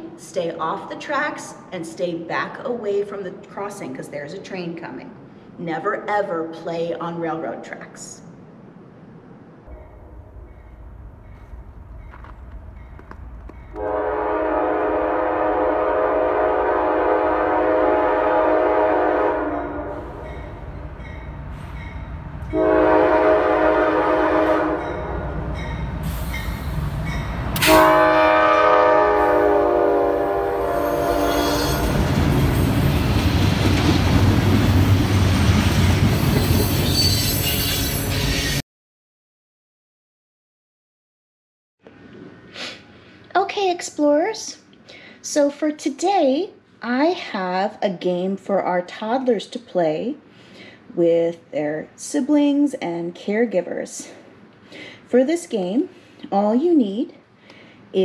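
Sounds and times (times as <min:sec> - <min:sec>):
train wheels rumbling on rail: 0:09.7 - 0:38.6
locomotive air horn blasts: 0:13.7 - 0:20.4, 0:22.5 - 0:26.7, 0:27.6 - 0:32.1.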